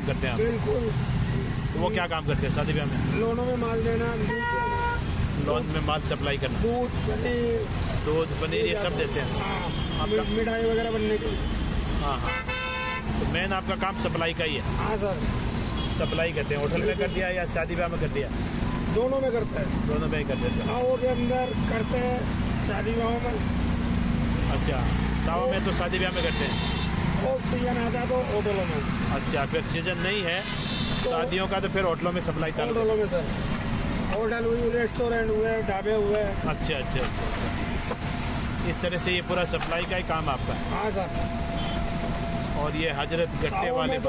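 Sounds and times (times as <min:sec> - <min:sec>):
traffic engines rumbling: 0:00.0 - 0:44.0
vehicle horn: 0:04.2 - 0:05.1, 0:12.2 - 0:13.1, 0:26.2 - 0:27.0, 0:30.3 - 0:31.2, 0:41.5 - 0:42.0
rickshaw engine rumble: 0:26.9 - 0:44.0
man's voice: 0:42.6 - 0:44.0.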